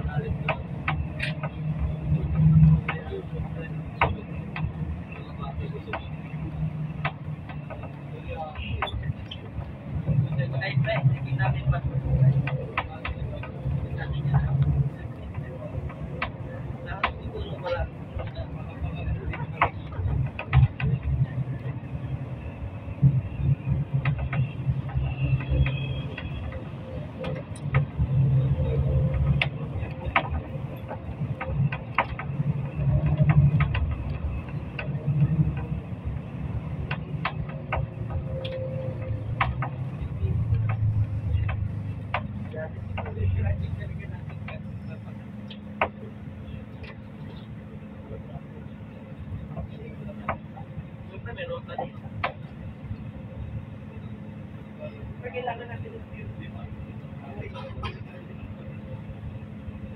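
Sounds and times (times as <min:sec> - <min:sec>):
vehicle engine and road rumble: 0:00.0 - 0:59.9.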